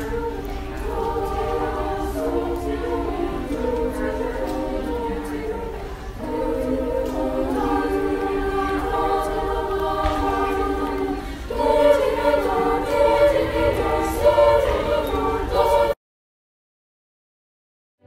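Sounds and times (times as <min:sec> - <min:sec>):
choir singing: 0:00.0 - 0:16.0.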